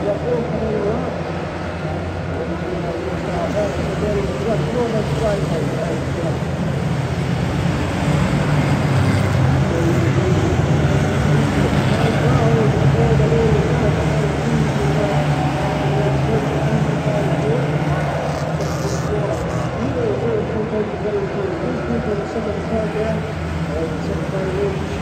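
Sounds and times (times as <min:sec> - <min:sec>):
racing car engines revving: 0:00.0 - 0:25.0.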